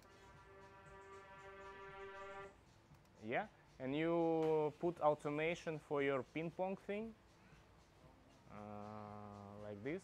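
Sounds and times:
reversed synth tone: 0:00.0 - 0:02.6.

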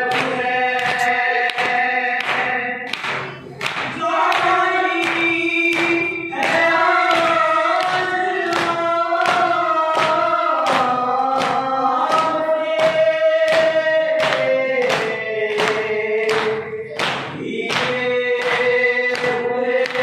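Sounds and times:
men chanting in unison: 0:00.0 - 0:20.0
rhythmic chest-beating slaps: 0:00.0 - 0:20.0.

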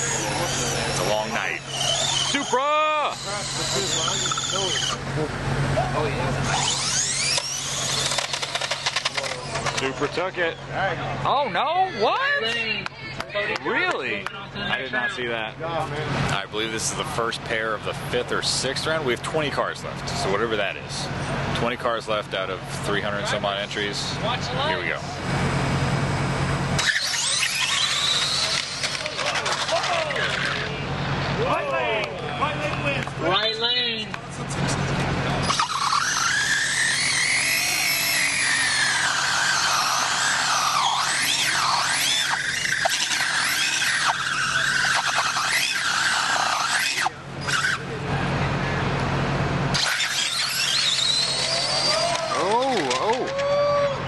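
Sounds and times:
people talking: 0:00.0 - 0:25.2, 0:27.7 - 0:35.9, 0:44.0 - 0:49.1, 0:51.4 - 0:53.6
electric motors whining: 0:00.0 - 0:54.0.

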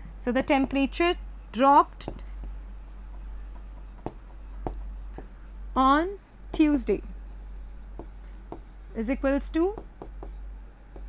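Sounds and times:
stylus scratching on screen: 0:00.3 - 0:10.5.

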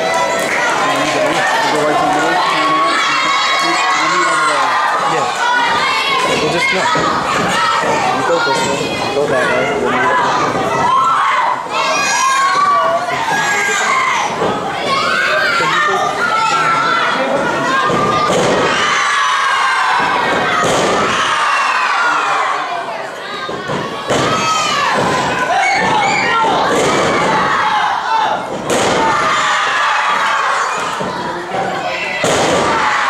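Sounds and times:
children shouting and cheering: 0:00.0 - 0:33.0.

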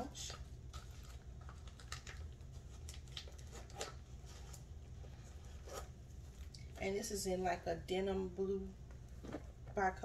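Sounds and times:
woman speaking: 0:00.0 - 0:00.4, 0:06.8 - 0:08.8, 0:09.7 - 0:10.0.

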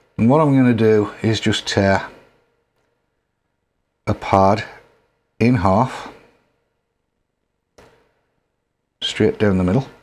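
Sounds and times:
person speaking: 0:00.2 - 0:02.3, 0:04.0 - 0:06.2.

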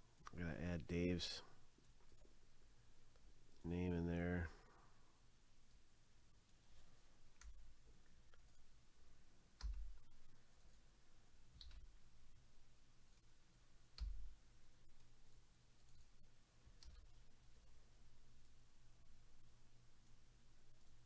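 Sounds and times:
computer clicks with low thumps: 0:09.6 - 0:10.3, 0:13.9 - 0:17.2.

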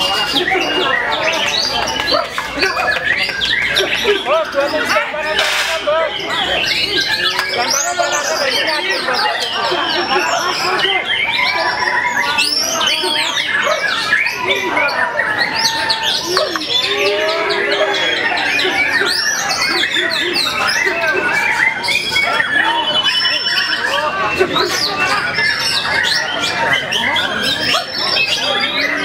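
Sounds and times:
crowd voices: 0:00.0 - 0:29.0
many songbirds singing: 0:00.0 - 0:29.0.

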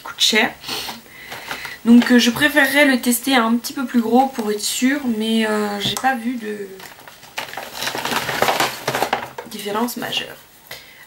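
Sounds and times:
bottles and tubes clattering: 0:06.8 - 0:09.5.

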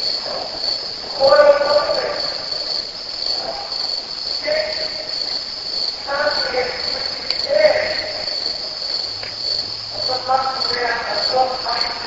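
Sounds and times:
crickets trilling: 0:00.0 - 0:12.0
person speaking: 0:01.1 - 0:02.6, 0:04.4 - 0:05.3, 0:06.0 - 0:08.4, 0:10.0 - 0:12.0.

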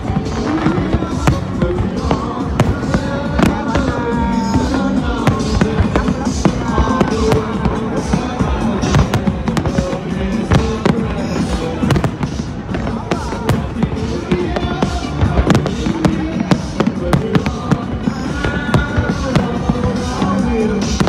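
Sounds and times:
fireworks bursting: 0:00.0 - 0:21.0
music playing: 0:00.0 - 0:21.0.

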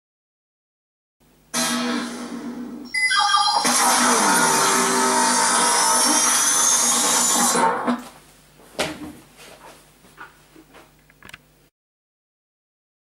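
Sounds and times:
rising high whine: 0:01.6 - 0:07.8.

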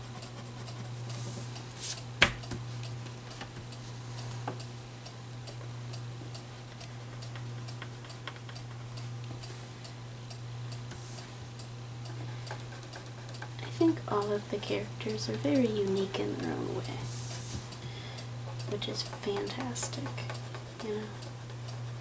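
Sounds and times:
steady low hum: 0:00.0 - 0:22.0
pencil scratching on paper: 0:19.1 - 0:22.0.

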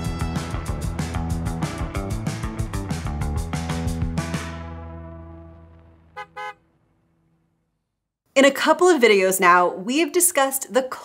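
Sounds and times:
intro music chord: 0:02.7 - 0:06.4
car horn toots: 0:06.0 - 0:06.8.

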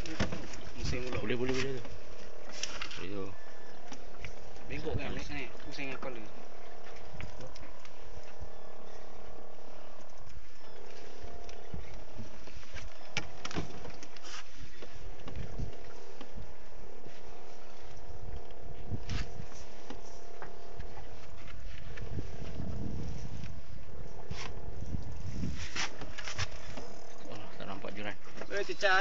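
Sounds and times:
boat engine running: 0:00.0 - 0:29.0
wind on microphone: 0:14.8 - 0:17.0, 0:17.9 - 0:26.9.

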